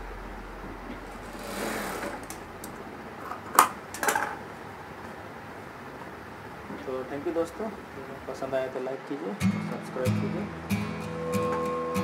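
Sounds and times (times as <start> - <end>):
industrial sewing machine stitching: 1.2 - 2.4.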